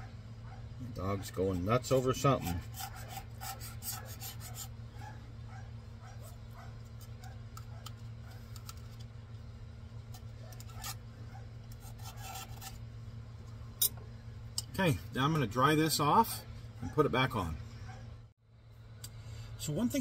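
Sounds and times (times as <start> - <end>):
distant dog barking: 0.0 - 1.4, 4.9 - 8.5, 17.8 - 18.2
steady low hum: 0.0 - 20.0
metal knife scraping plate: 10.5 - 11.0, 11.7 - 12.8.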